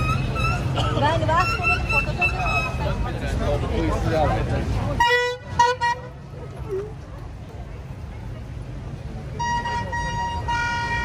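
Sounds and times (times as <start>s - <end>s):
vehicle horn honking: 5.0s - 6.2s, 9.4s - 11.0s.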